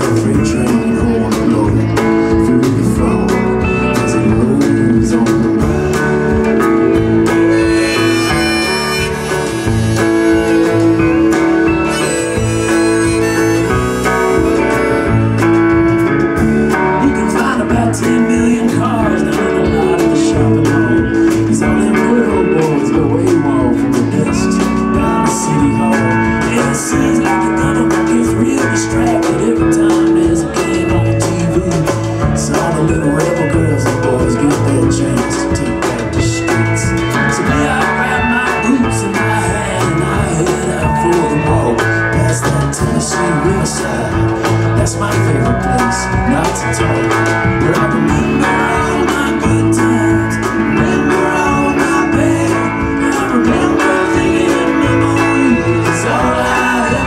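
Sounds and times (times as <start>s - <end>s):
live band guitars and drums: 0.0s - 57.0s
harmonica long held notes: 5.6s - 17.0s.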